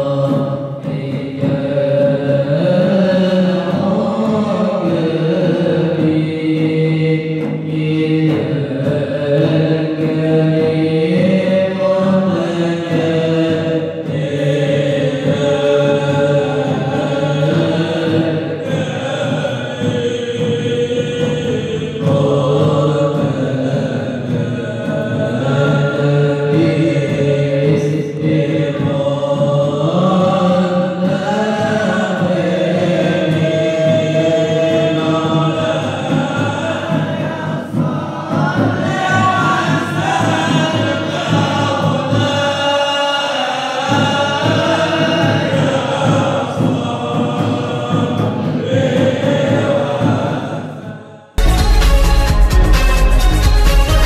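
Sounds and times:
group singing devotional chant: 0:00.0 - 0:51.4.

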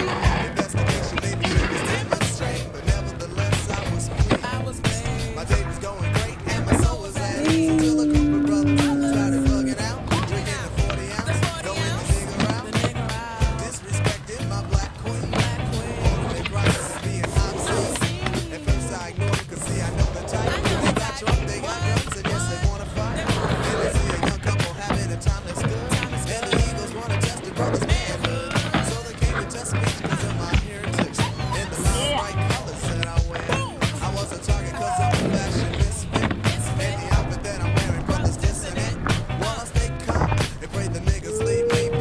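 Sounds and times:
music with a steady beat: 0:00.0 - 0:42.0
skateboard clacking on landings: 0:00.0 - 0:42.0
skateboard wheels rolling on concrete: 0:00.0 - 0:42.0.

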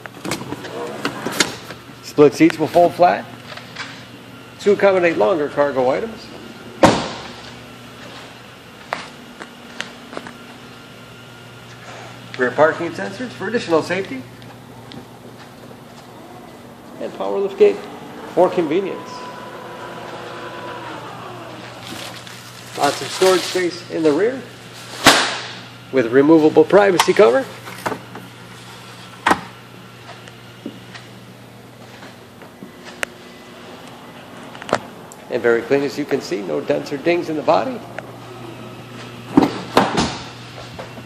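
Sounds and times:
seatback knocking down: 0:06.7 - 0:07.5
electric motor whine: 0:13.1 - 0:23.7, 0:32.6 - 0:41.0.

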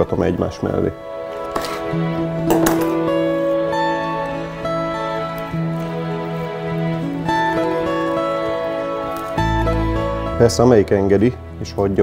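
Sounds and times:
plucked string notes: 0:01.5 - 0:11.2.

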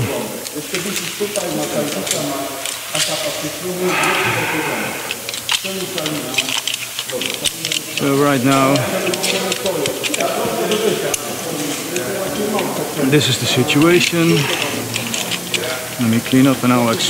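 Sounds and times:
carabiners clicking: 0:00.0 - 0:17.0
indistinct talking: 0:00.0 - 0:17.0
rope hissing through hands: 0:00.0 - 0:17.0.

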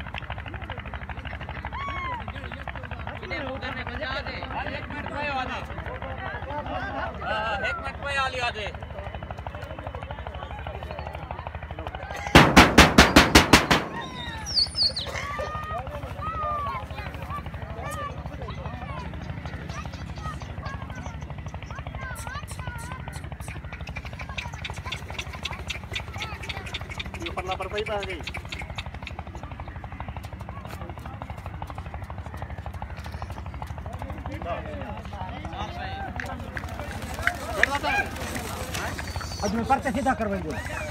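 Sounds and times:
faint voices: 0:00.0 - 0:40.9
pulsing motor rumble: 0:00.0 - 0:40.9
rapid sharp bangs: 0:12.3 - 0:14.4.

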